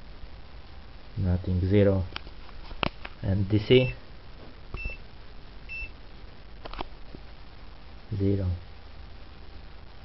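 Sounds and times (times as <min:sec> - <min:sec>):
clamp meter beep: 0:04.8 - 0:05.0, 0:05.7 - 0:05.9.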